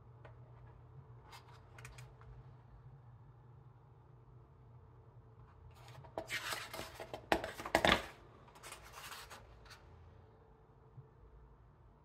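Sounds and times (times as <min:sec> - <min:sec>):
book pages turning: 0:05.8 - 0:09.8.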